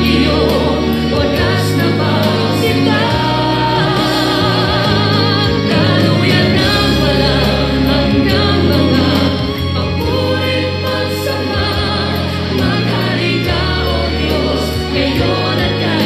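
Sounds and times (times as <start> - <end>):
choir singing a hymn: 0.0 - 16.0
instrumental backing: 0.0 - 16.0.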